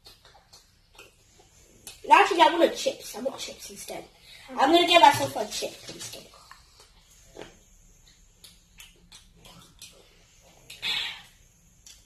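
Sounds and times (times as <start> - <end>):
small clicks and mouth noises: 0.0 - 2.1, 5.2 - 12.0.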